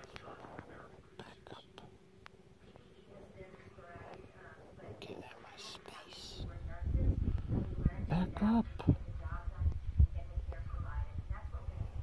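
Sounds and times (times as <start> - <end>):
faint whispering: 0.0 - 12.0.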